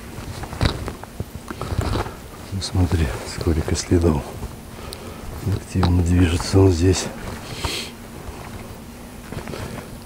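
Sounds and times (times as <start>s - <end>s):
twigs cracking underfoot: 0.0s - 10.0s
footsteps on muddy track: 5.2s - 10.0s.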